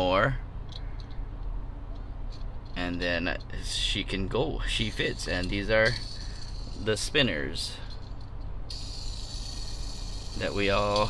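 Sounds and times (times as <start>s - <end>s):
steady low hum: 0.0s - 11.0s
toy car wheels whirring: 4.7s - 11.0s.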